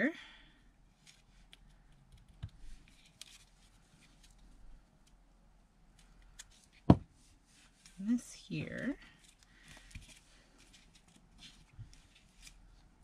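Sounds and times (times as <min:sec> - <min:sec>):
paper rustling: 0:02.6 - 0:04.4, 0:08.7 - 0:12.9.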